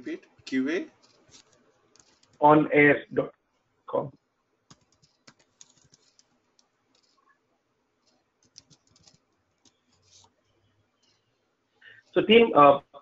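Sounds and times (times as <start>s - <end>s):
keyboard keys clicking: 4.7s - 6.3s, 8.0s - 10.3s.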